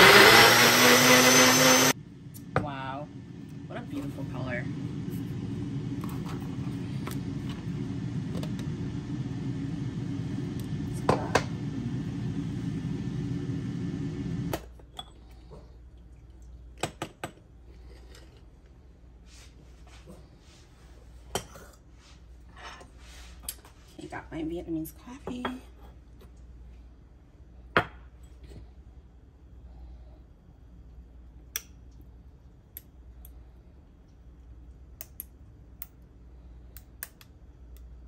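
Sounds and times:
blender running: 0.0s - 2.0s.

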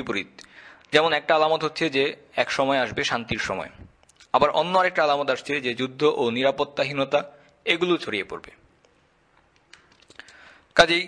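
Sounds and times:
man speaking: 0.0s - 8.6s, 10.8s - 11.0s.

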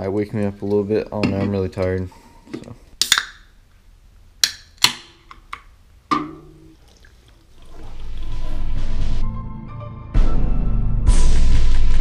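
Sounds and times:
drink can clicking open: 3.0s - 3.4s
music: 8.3s - 12.0s.

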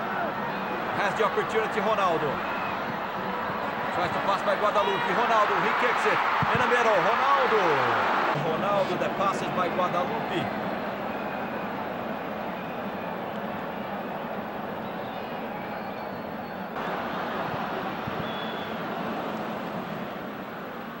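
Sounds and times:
stadium crowd roar: 0.0s - 21.0s.

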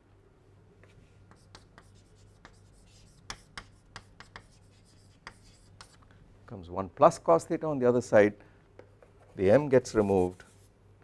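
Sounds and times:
chalk tapping and scratching: 0.8s - 6.0s, 8.9s - 10.7s.

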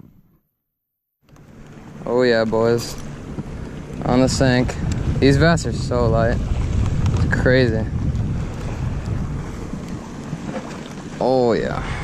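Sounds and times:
wind rushing on microphone: 1.9s - 12.0s.

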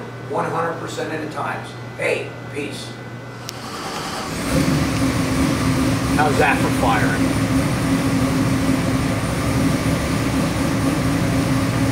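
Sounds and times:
engine firing and running loud: 3.4s - 11.9s.

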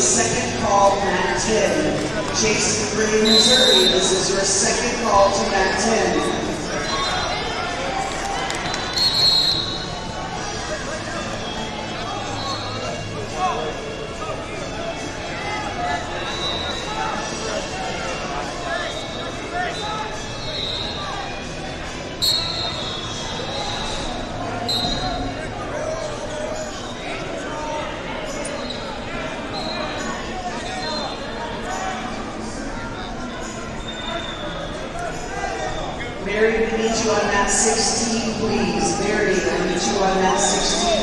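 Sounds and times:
hubbub of voices: 0.0s - 41.0s
shrill referee whistle blasts: 3.2s - 4.0s, 8.7s - 9.8s, 22.2s - 23.0s, 24.7s - 25.2s.

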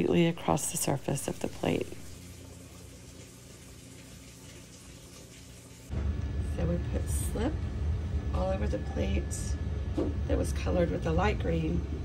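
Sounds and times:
potter's wheel humming: 0.0s - 12.0s.

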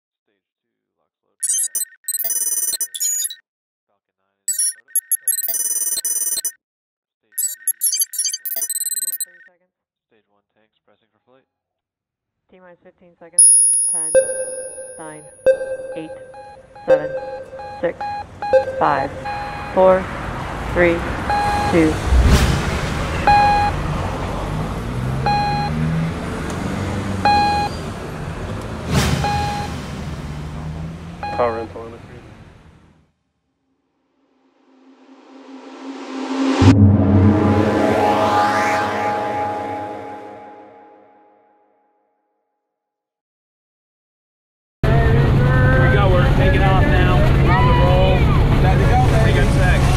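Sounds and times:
rapid high electronic beeping: 1.4s - 3.4s, 4.5s - 6.6s, 7.4s - 9.5s, 13.4s - 20.0s
steady electronic tone: 7.4s - 9.3s, 13.4s - 20.0s, 35.2s - 41.3s
whoosh: 21.5s - 24.0s, 34.7s - 40.9s
deep boom: 22.0s - 23.9s, 36.6s - 38.7s
low rumbling drone: 35.2s - 41.0s.

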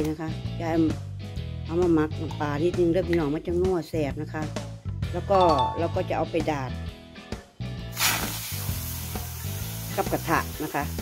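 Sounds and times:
meat sizzling in a frying pan: 7.9s - 11.0s.

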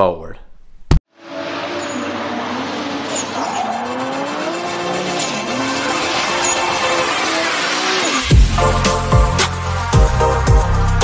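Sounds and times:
car engine: 1.1s - 11.0s
tyres squealing: 1.6s - 8.3s.

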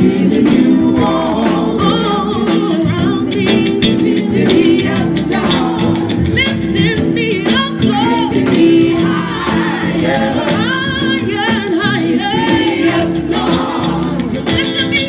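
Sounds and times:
electric guitar: 0.0s - 15.0s
women singing gospel in harmony: 0.0s - 15.0s.

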